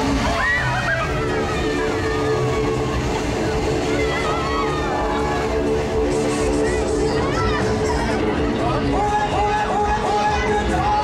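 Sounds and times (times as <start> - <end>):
rushing noise: 0.0 - 10.2
fairground ride music: 0.0 - 11.0
voices: 0.0 - 11.0.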